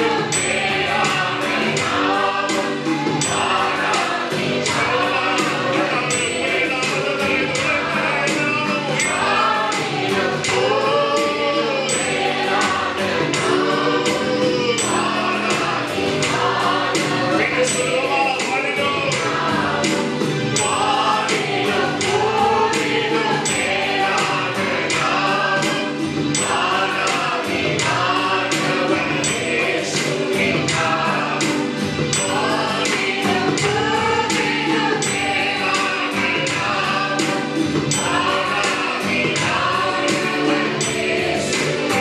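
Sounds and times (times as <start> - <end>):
men singing worship song: 0.0 - 42.0
musical accompaniment with steady beat: 0.0 - 42.0.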